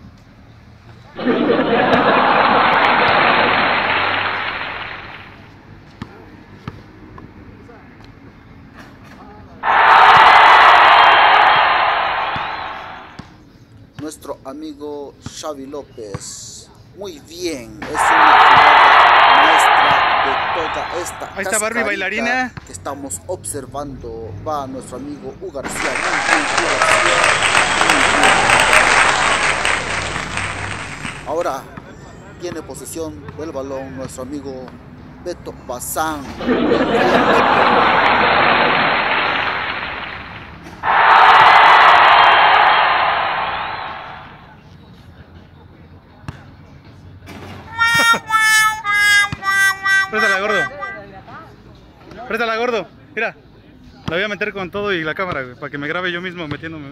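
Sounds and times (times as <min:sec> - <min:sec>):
applause: 0:01.2 - 0:05.5, 0:09.6 - 0:13.2, 0:18.0 - 0:22.0, 0:25.7 - 0:31.6, 0:36.4 - 0:44.5, 0:49.4 - 0:51.0
loud noisy sound effect swells: 0:01.2 - 0:05.5, 0:09.6 - 0:13.2, 0:36.4 - 0:44.5
faint speech: 0:44.4 - 0:52.4
held musical notes: 0:47.7 - 0:51.5.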